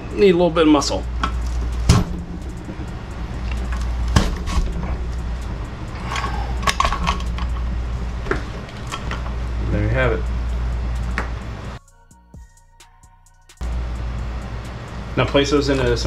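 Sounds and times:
metal clacks and scraping: 0.8 - 9.5
sharp knocks: 1.2 - 5.4.

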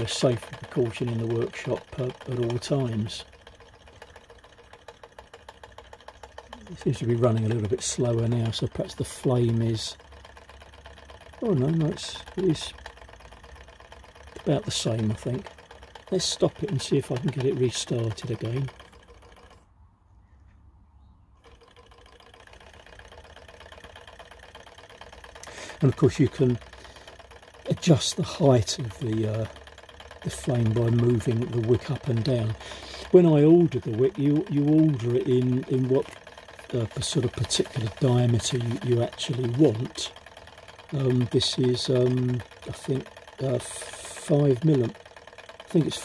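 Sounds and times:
small engine ticking rhythmically: 0.0 - 19.7, 21.4 - 46.0.

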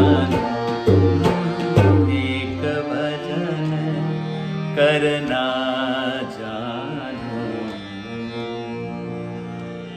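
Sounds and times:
man singing wordlessly: 0.0 - 8.0
harmonium playing chords: 0.0 - 9.9.

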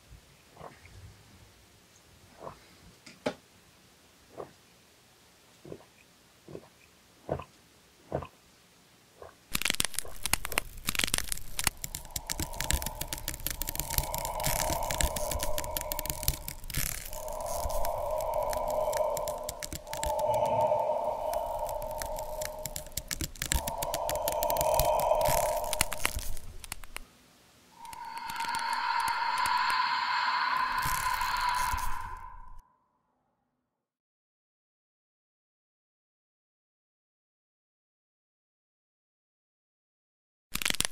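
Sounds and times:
body cracking and tearing effects: 9.5 - 27.0, 27.8 - 32.6, 40.6 - 40.9
long strained cries: 11.2 - 27.0, 27.8 - 32.6.

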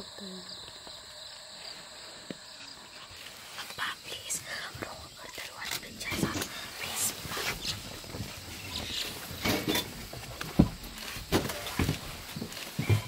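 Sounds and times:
person whispering: 3.5 - 7.9.

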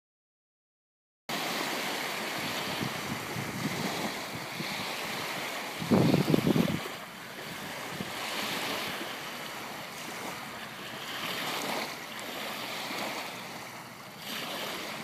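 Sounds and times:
waves lapping on stony shore: 1.3 - 15.0
wind on microphone: 1.4 - 15.0.

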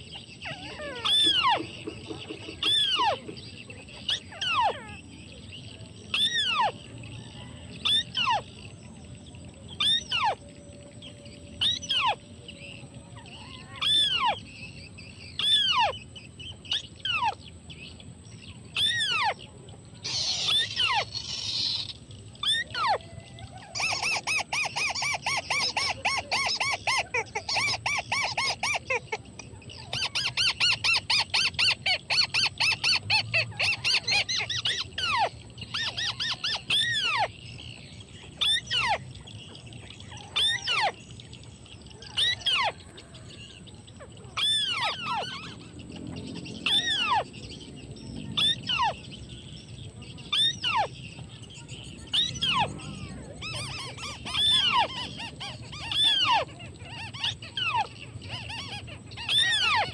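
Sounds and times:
birds chattering calls: 0.0 - 59.9
descending bird calls: 0.0 - 59.9.

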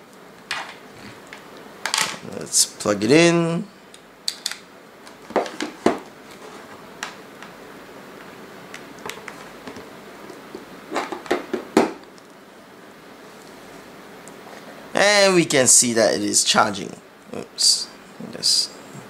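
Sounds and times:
devices set down on a desk: 0.5 - 0.8, 1.8 - 2.2, 5.3 - 6.1.

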